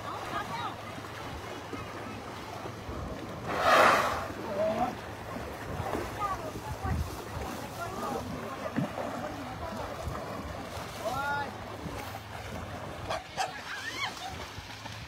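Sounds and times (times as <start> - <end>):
water sloshing and lapping: 0.0 - 15.0
voices calling out: 5.9 - 14.6.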